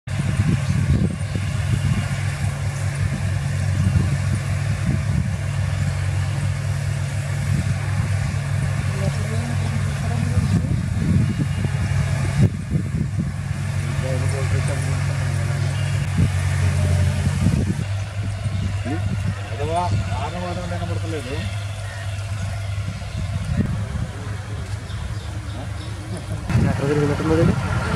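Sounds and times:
combine harvester engine drone: 0:00.1 - 0:27.9.

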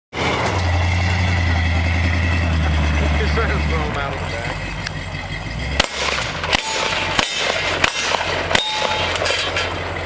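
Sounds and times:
truck engine idling: 0:00.2 - 0:10.0.

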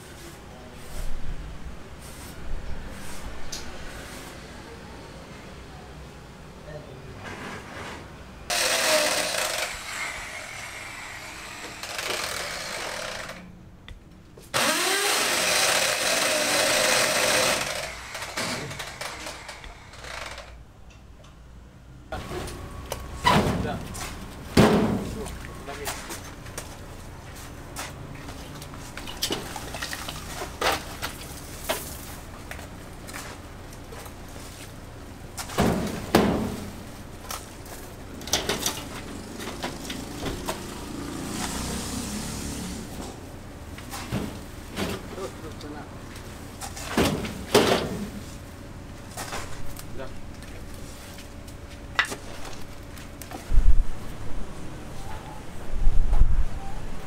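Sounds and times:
loud harsh machine noise: 0:08.5 - 0:13.4, 0:14.6 - 0:20.6.

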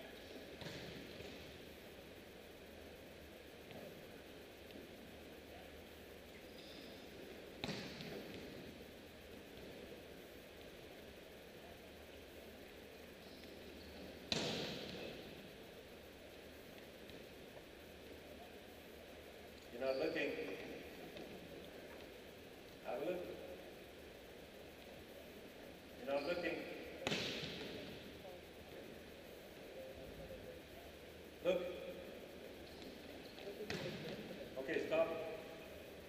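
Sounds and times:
volleyball impact smack: 0:07.6 - 0:08.5, 0:14.3 - 0:15.0, 0:27.0 - 0:27.8, 0:33.7 - 0:34.2
arena echo: 0:30.8 - 0:36.0.

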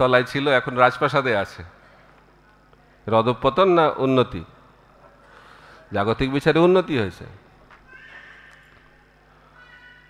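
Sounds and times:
man speaking: 0:00.0 - 0:01.7, 0:03.1 - 0:04.6, 0:05.9 - 0:07.4.

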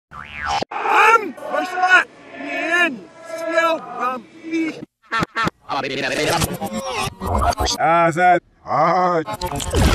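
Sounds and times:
reversed voice: 0:05.9 - 0:07.8.

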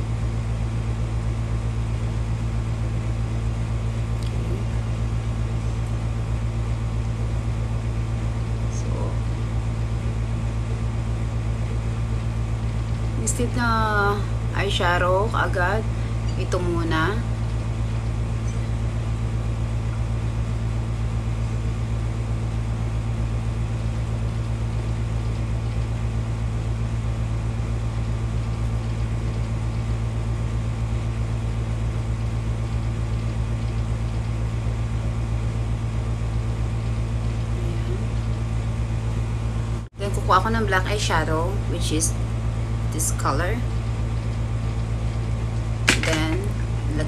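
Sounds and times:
steady low hum: 0:00.0 - 0:47.0.

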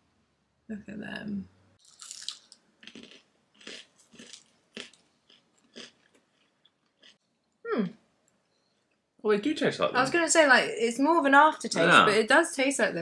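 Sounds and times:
crunching and chewing crispy snacks: 0:01.8 - 0:07.2
person humming mm: 0:07.7 - 0:08.0.

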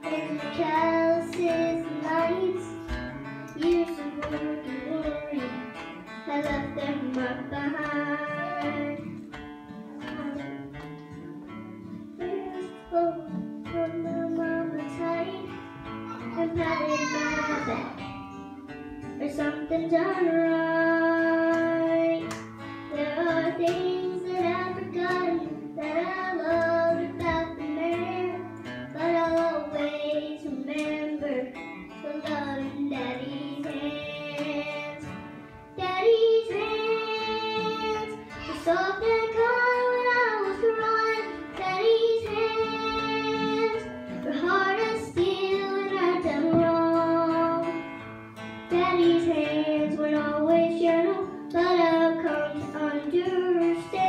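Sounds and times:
girl singing: 0:00.0 - 0:47.9, 0:48.7 - 0:54.0
strummed acoustic guitar: 0:00.0 - 0:54.0.

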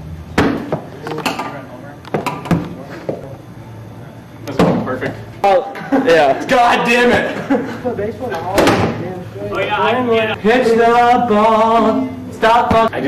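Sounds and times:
ball knocks and bangs: 0:00.4 - 0:00.9, 0:08.6 - 0:09.0.

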